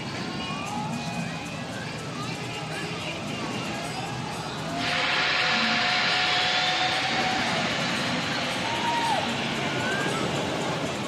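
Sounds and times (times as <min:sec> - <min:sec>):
steady whine: 0:00.6 - 0:11.0
roller coaster rushing roar: 0:03.7 - 0:11.0.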